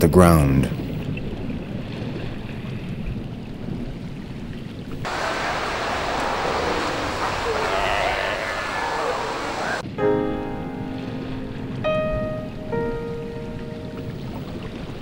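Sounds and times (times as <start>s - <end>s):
ocean waves rushing and splashing: 0.8s - 15.0s.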